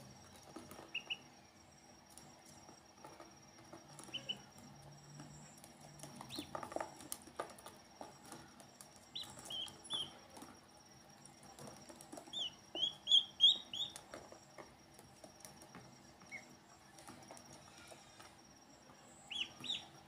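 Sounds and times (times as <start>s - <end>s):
ducklings peeping: 0.3s - 1.3s, 3.9s - 4.6s, 5.2s - 10.5s, 11.4s - 18.4s, 19.2s - 20.0s.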